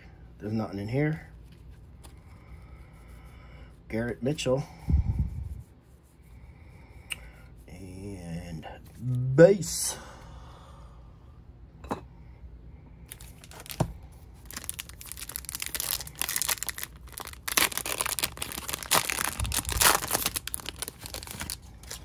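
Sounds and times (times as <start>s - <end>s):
wrapper crinkling and ripping: 13.1s - 22.0s.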